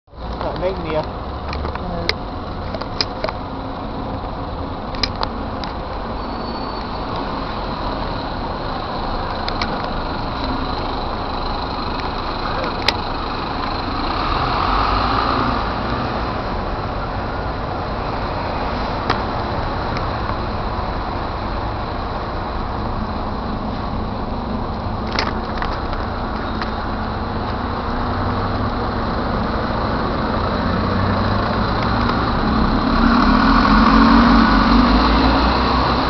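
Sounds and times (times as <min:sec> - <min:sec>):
bus engine and road noise: 0:00.0 - 0:36.0.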